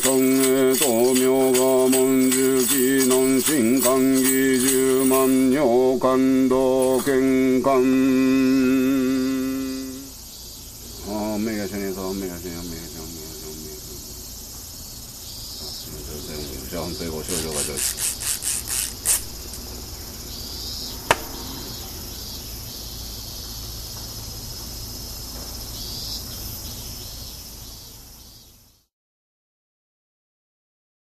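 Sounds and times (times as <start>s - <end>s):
insects chirring: 0.0s - 28.9s
sharp click: 21.1s - 21.4s.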